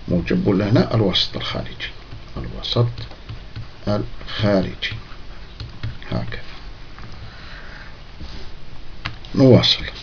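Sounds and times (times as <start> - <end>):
low hum and hiss: 0.0 - 10.0
person breathing: 7.1 - 8.6.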